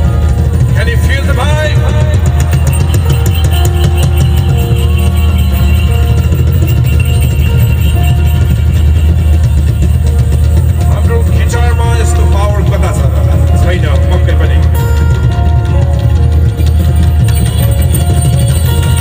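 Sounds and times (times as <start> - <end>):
band music with heavy bass: 0.0 - 19.0.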